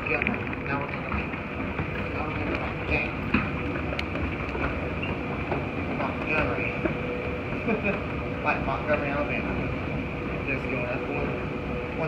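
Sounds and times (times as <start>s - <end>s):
escalator mechanical hum: 0.0s - 12.0s
escalator steps clicking: 0.0s - 12.0s
high whine: 0.0s - 12.0s.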